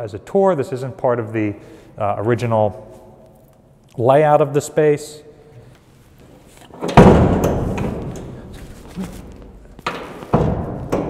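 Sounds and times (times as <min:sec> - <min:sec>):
heavy metal hatch thuds: 0:06.8 - 0:08.6, 0:09.8 - 0:11.0.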